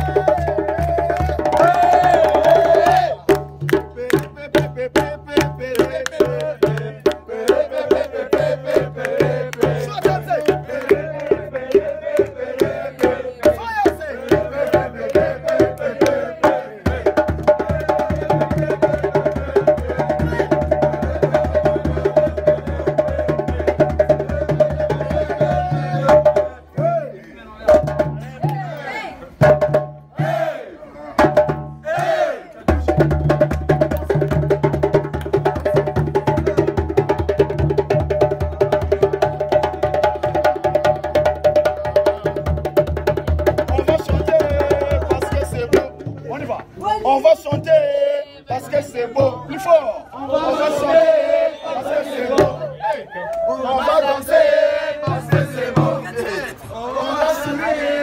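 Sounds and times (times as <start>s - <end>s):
djembe drumming: 0.0s - 28.7s, 29.4s - 30.4s, 31.2s - 32.0s, 32.6s - 46.7s, 47.3s - 47.9s, 48.5s - 49.7s, 52.3s - 52.8s, 55.0s - 56.7s
voices: 4.0s - 29.4s, 43.6s - 58.0s.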